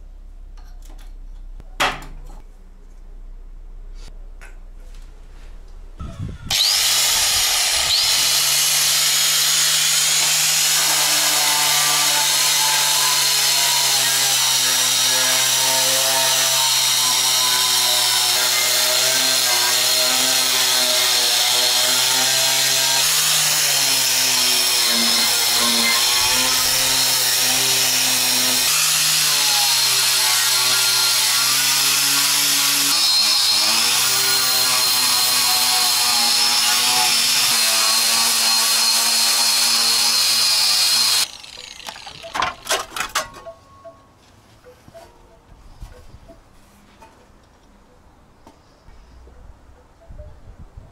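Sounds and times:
angle grinder grinding metal: 0:06.4 - 0:43.4.

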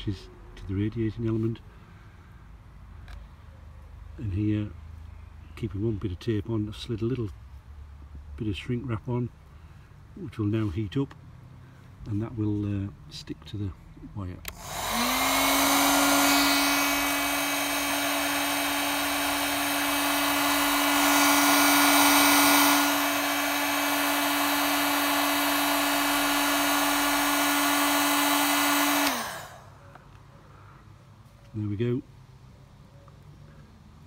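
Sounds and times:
heat gun running: 0:14.5 - 0:29.7
motor winding down: 0:14.5 - 0:29.7.

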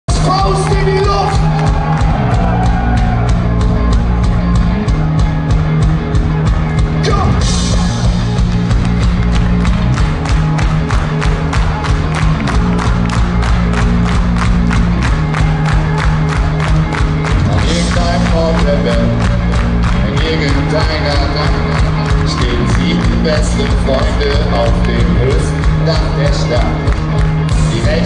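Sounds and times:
ska-punk band playing: 0:00.1 - 0:28.0.

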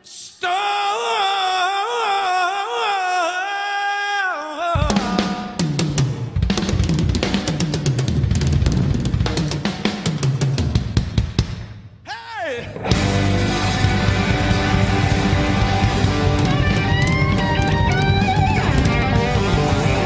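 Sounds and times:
man singing wordless note: 0:00.0 - 0:05.7, 0:12.1 - 0:12.8
drum kit playing: 0:04.8 - 0:11.8, 0:12.8 - 0:20.0.

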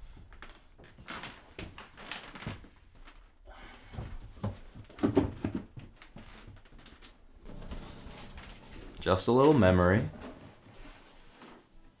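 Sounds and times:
soft knocks and rustling: 0:03.9 - 0:12.0.

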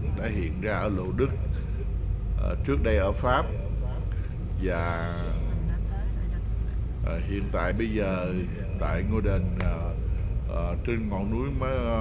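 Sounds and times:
car driving low rumble: 0:00.0 - 0:12.0.

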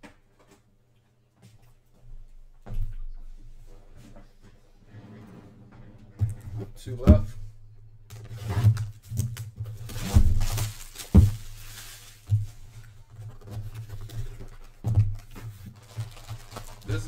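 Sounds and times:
cardboard sliding scrape: 0:04.9 - 0:06.2, 0:08.2 - 0:08.8
cardboard box knocks and thumps: 0:08.5 - 0:11.6, 0:12.2 - 0:16.2.

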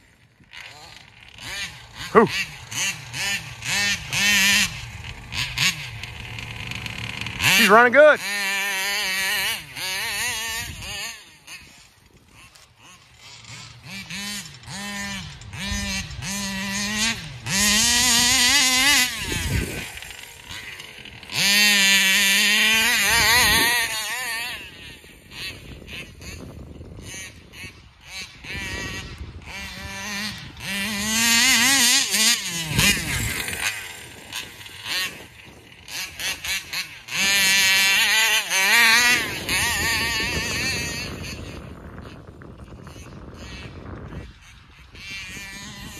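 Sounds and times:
rc car two-stroke engine revving: 0:00.0 - 0:45.9.

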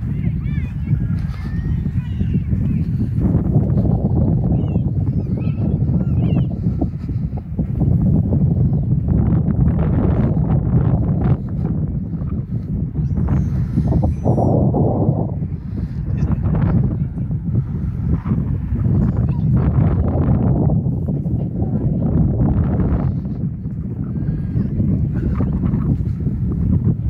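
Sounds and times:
wind buffeting microphone: 0:00.0 - 0:27.0.

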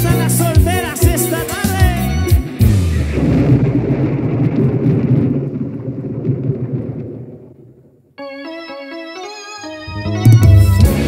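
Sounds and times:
drum and cymbal hits: 0:00.0 - 0:03.2, 0:10.3 - 0:11.0
rumbling wash of band sound: 0:00.2 - 0:08.0.

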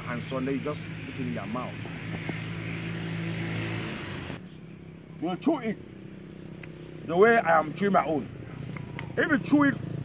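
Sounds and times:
low engine hum with rushing: 0:00.0 - 0:10.0.

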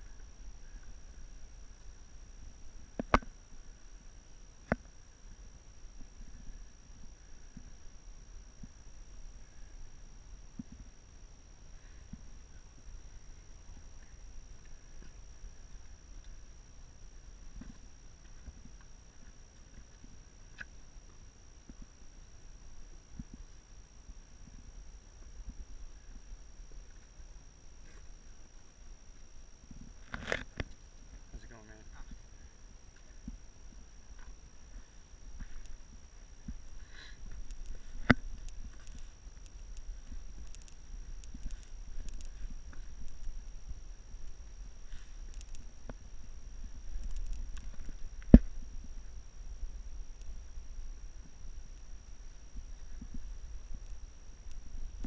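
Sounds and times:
faint high whine: 0:00.0 - 0:55.0.

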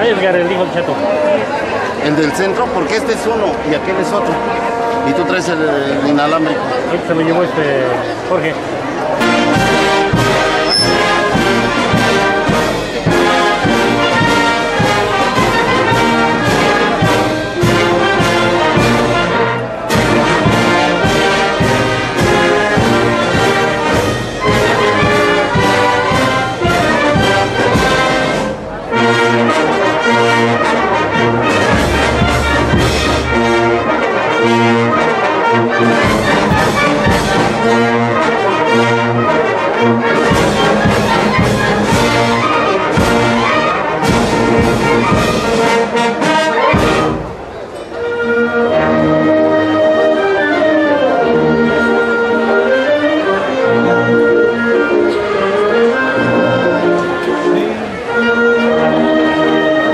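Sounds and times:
brass instruments: 0:00.0 - 0:59.9
concert band playing: 0:00.9 - 0:59.9.

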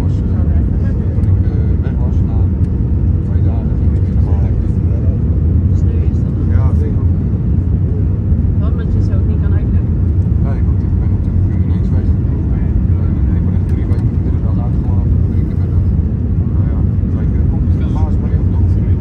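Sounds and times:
airliner engine roar in cabin: 0:00.0 - 0:19.0
faint voices murmuring: 0:00.0 - 0:19.0.

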